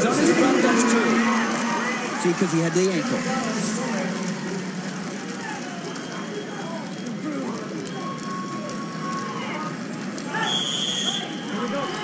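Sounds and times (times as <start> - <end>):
crowd din of many voices: 0.0 - 12.0.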